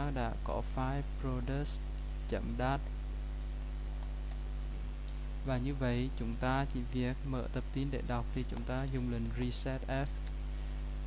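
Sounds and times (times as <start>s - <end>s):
steady low hum: 0.0s - 11.0s
computer keyboard keystrokes: 2.0s - 4.8s, 8.3s - 11.0s.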